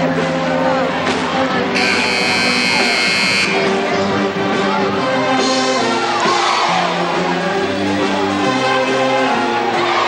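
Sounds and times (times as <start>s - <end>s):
music: 0.0s - 10.0s
loud electric buzzer: 1.8s - 3.6s.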